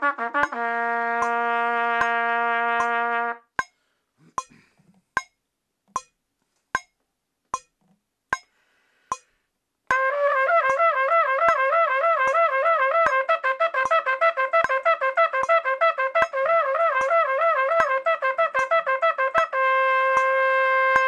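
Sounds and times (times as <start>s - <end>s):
trumpet playing: 0.0s - 3.5s, 9.9s - 21.0s
metronome clicking: 0.4s - 3.8s, 5.2s - 6.2s, 6.8s - 8.5s, 10.6s - 21.0s.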